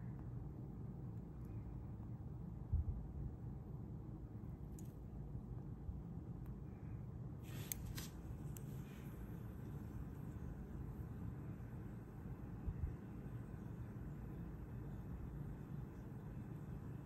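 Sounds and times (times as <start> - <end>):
low room rumble: 0.0 - 17.0.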